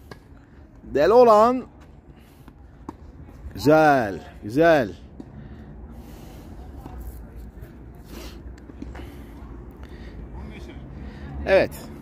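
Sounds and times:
distant voices: 0:00.0 - 0:12.0.

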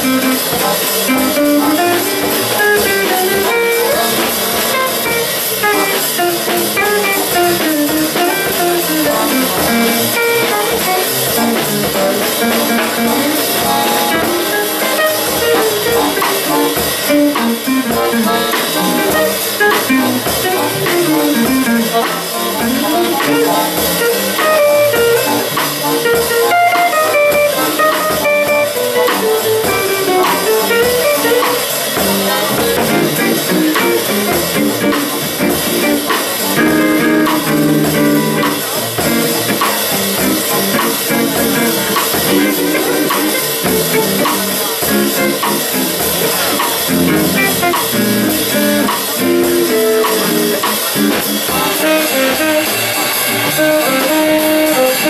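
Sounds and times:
drum kit: 0:00.0 - 0:55.0
jazz guitar single-note runs: 0:00.0 - 0:55.0
plucked double bass: 0:00.0 - 0:55.0.

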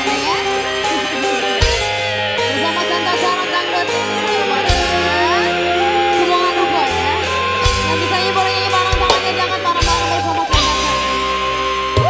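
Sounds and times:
sliding melody line: 0:00.0 - 0:12.0
steady bass: 0:00.0 - 0:12.0.

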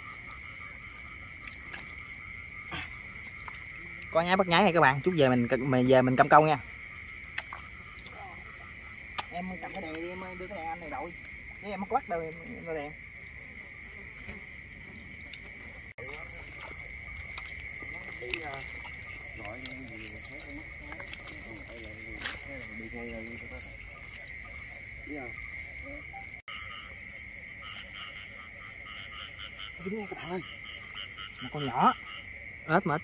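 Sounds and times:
frogs and insects trilling: 0:00.0 - 0:33.0.

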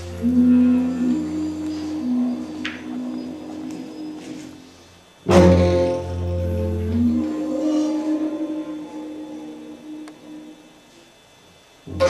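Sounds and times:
string quartet low drones: 0:00.0 - 0:12.0.

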